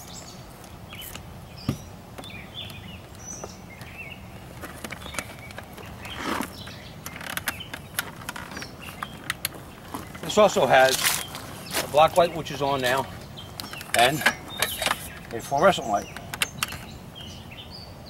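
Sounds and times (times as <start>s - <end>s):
birds chirping: 0.0s - 18.0s.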